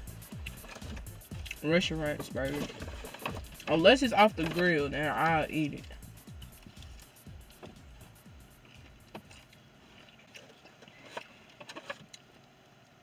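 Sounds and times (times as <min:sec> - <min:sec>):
faint chewing of crispy food: 0:00.0 - 0:01.6, 0:02.5 - 0:03.7, 0:05.8 - 0:13.0.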